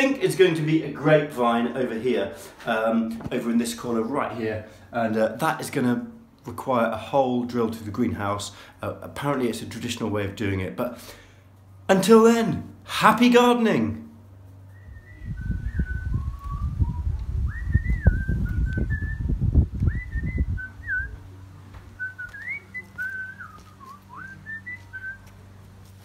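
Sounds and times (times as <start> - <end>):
person whistling a tune: 14.7 - 21.1, 22.0 - 25.2
low rumble: 14.8 - 24.4.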